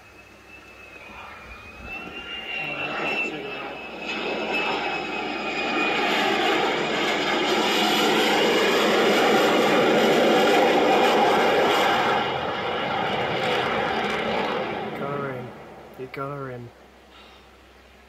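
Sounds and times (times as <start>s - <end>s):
high whine: 0.0s - 17.0s
jet engine noise: 0.0s - 17.3s.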